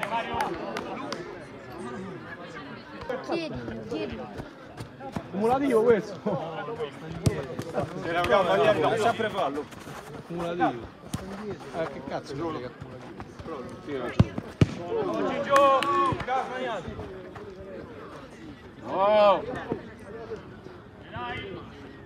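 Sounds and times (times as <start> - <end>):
players shouting: 13.9 - 18.1
football being struck: 14.1 - 14.8.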